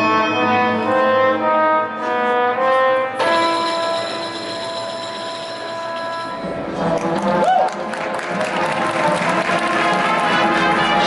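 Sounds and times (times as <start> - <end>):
marching band holding a chord: 8.0 - 11.0.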